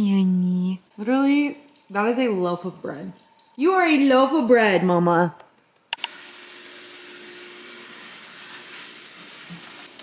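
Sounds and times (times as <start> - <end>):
kitchen hiss of food cooking: 6.1 - 10.0.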